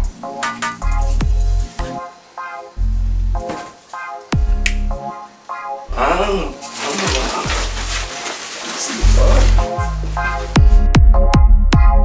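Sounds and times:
electronic funk music: 0:00.0 - 0:08.1, 0:08.9 - 0:12.0.

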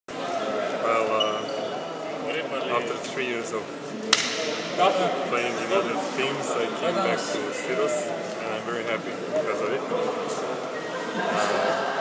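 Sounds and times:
indistinct voices in echoing hall: 0:00.1 - 0:12.0.

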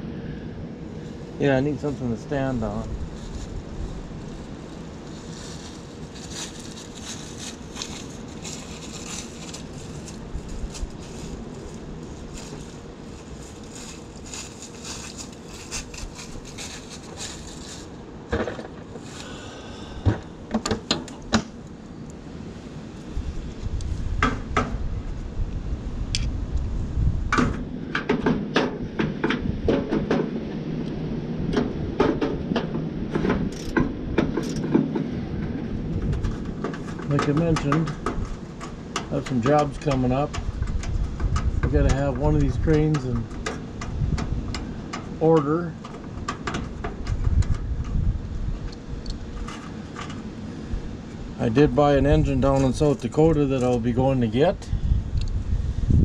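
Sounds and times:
low rumble: 0:00.0 - 0:20.5
steady background hiss: 0:00.0 - 0:26.9.

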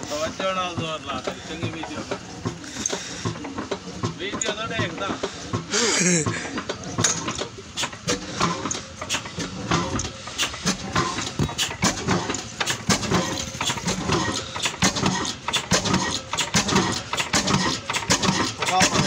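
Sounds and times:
stationary engine knocking: 0:00.0 - 0:19.0.

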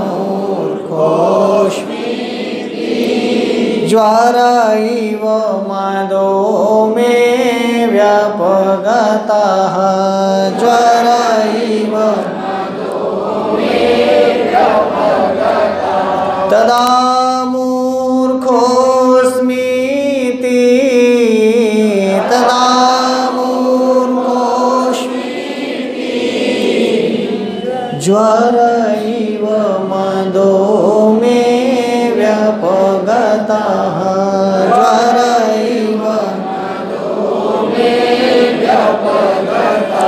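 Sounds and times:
man chanting melodically: 0:00.0 - 0:02.0, 0:03.8 - 0:12.5, 0:16.1 - 0:25.2, 0:27.0 - 0:36.6
man chanting melodic verse: 0:16.5 - 0:25.2.

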